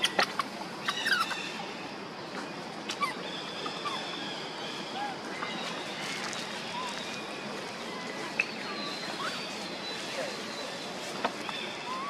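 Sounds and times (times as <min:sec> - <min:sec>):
faint squeaky chirps: 0:00.0 - 0:12.0
steady outdoor hiss: 0:00.0 - 0:12.0.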